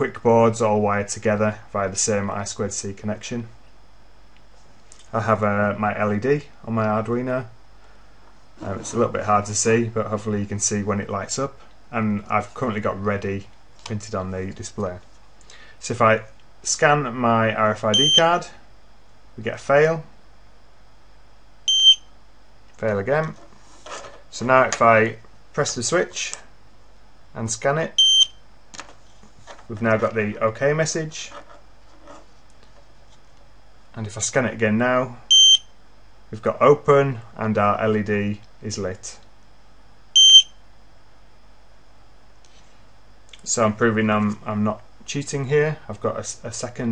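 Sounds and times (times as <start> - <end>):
short high-pitched buzzer beep: 40.2 - 40.5.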